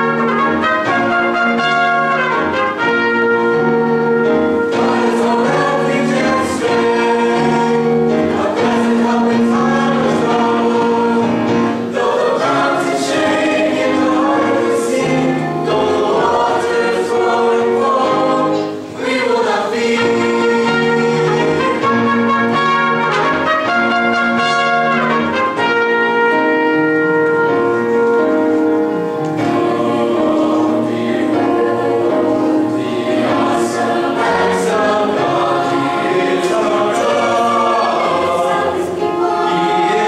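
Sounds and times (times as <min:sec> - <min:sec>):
trumpet playing held notes: 0:00.0 - 0:05.4, 0:19.8 - 0:28.9
mixed choir singing: 0:00.0 - 0:28.6, 0:29.2 - 0:40.0
choral accompaniment: 0:00.0 - 0:40.0.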